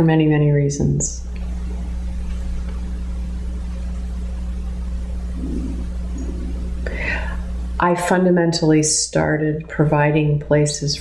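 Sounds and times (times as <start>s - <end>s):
woman speaking: 0.0s - 1.3s, 7.8s - 11.0s
low room tone hum: 0.0s - 11.0s
faint low murmur: 1.2s - 8.3s
intake of breath: 6.8s - 7.5s.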